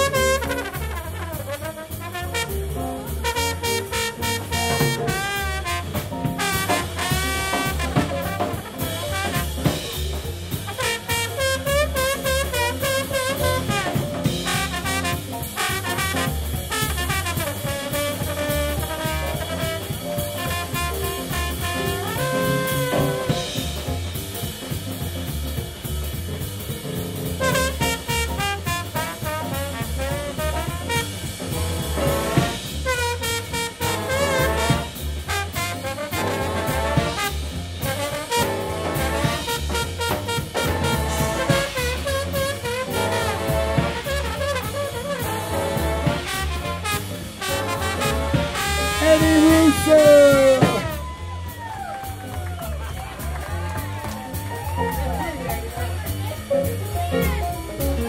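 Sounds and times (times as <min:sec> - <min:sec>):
big band playing swing jazz: 0:00.0 - 0:58.0.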